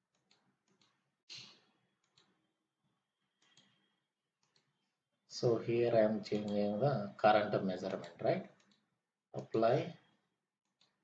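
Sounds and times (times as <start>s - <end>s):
faint computer mouse clicks: 3.4s - 3.8s, 4.4s - 4.7s, 6.2s - 6.6s, 7.8s - 9.6s.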